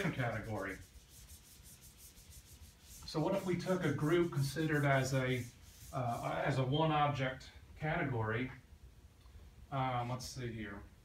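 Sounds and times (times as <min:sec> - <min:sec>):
eraser wiping whiteboard: 0:00.0 - 0:06.6.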